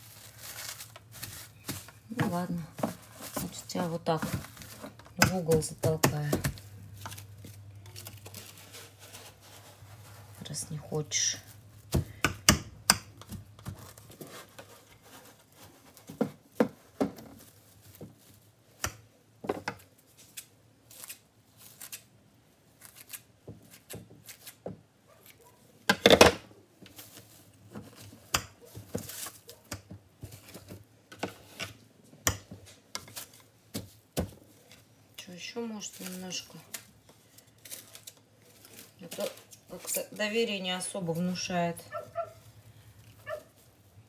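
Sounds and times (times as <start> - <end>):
plastic film crinkling: 0.0 - 12.0, 17.2 - 18.6, 26.9 - 29.7, 32.7 - 44.0.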